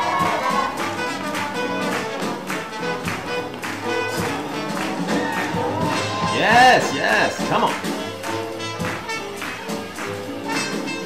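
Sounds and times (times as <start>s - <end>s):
swing jazz band playing: 0.0s - 11.0s.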